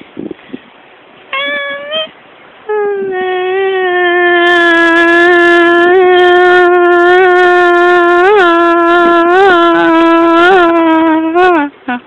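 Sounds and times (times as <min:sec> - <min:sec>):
woman singing high note: 0:01.4 - 0:02.1, 0:02.7 - 0:12.0.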